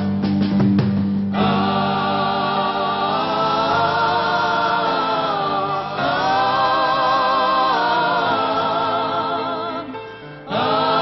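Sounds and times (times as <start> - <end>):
vocal group singing held chords: 1.4 - 11.0.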